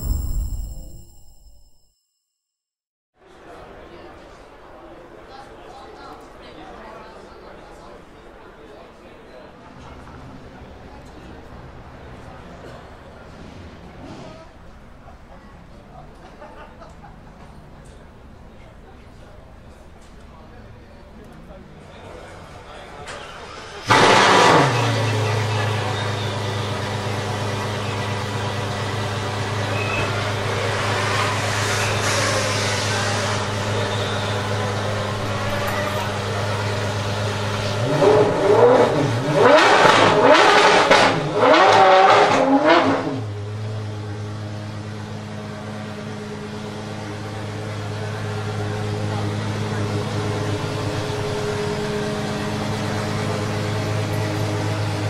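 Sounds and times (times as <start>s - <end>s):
car engine starting and idling: 22.4s - 55.0s
engine revving in blips: 23.8s - 46.2s.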